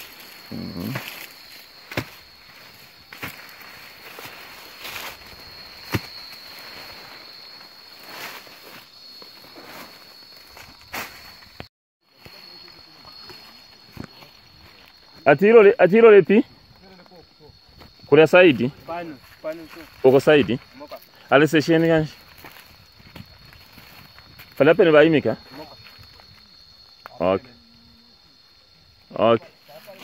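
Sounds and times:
footsteps through brush: 0:00.0 - 0:15.3, 0:16.6 - 0:27.0
branches snapping: 0:01.0 - 0:06.5.

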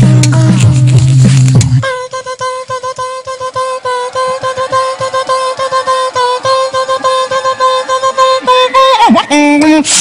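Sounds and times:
low droning beatbox bass loop: 0:00.0 - 0:10.0
pulsing single-note vocal loop: 0:01.6 - 0:09.9.

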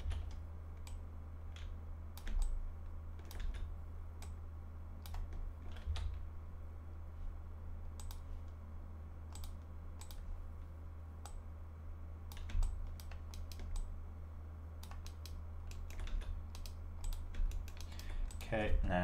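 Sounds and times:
keyboard keys clicking: 0:03.2 - 0:04.4, 0:14.8 - 0:18.5.

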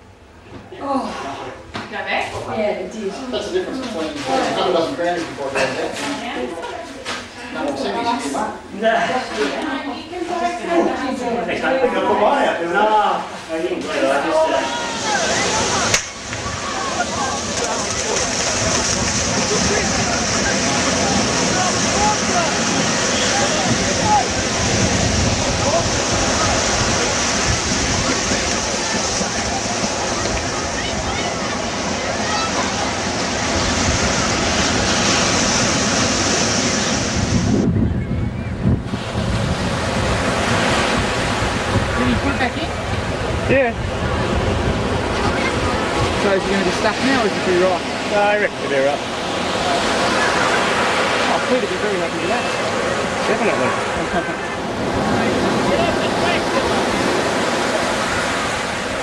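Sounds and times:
ocean surf breaking: 0:09.2 - 0:59.0
wind on microphone: 0:15.0 - 0:48.1.

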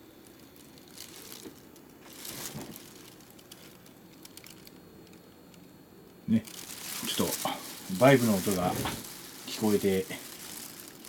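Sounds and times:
plastic sheeting crinkling: 0:00.0 - 0:05.2, 0:06.3 - 0:11.0.

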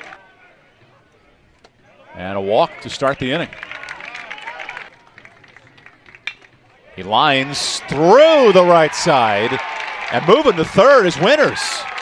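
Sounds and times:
faint crowd noise: 0:00.0 - 0:12.0.

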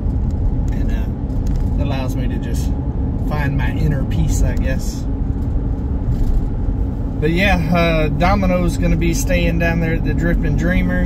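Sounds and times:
vehicle cabin road rumble: 0:00.0 - 0:11.0.

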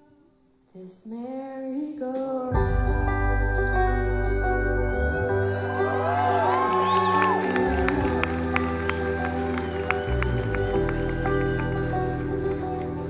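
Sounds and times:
acoustic guitar plucked: 0:02.5 - 0:13.0
banjo notes: 0:02.5 - 0:13.0
long held chords: 0:02.5 - 0:13.0.

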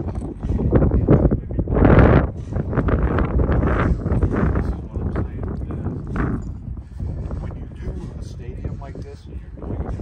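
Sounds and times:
strong wind buffeting microphone: 0:00.0 - 0:10.0.

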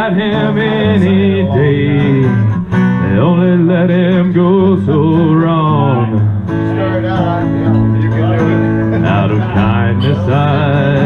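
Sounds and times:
acoustic guitar strummed: 0:00.0 - 0:11.0
man singing: 0:00.0 - 0:11.0.

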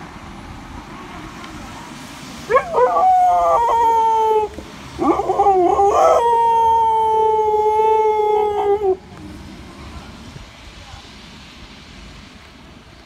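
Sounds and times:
dog howling: 0:02.5 - 0:09.0.

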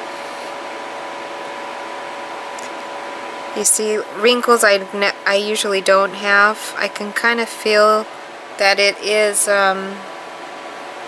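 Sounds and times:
electric fan running: 0:00.0 - 0:11.0.

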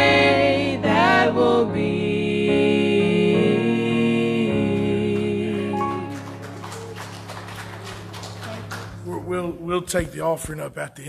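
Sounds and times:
faint music: 0:04.5 - 0:11.0.

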